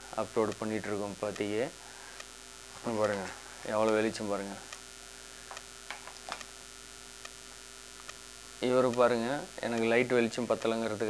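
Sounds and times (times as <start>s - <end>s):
faint hiss: 0.0s - 11.0s
low electrical hum: 0.0s - 11.0s.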